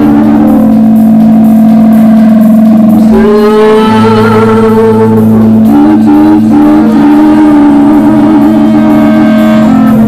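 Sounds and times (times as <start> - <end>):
steady low drone: 0.0 - 10.0
sustained experimental music tones: 0.0 - 10.0.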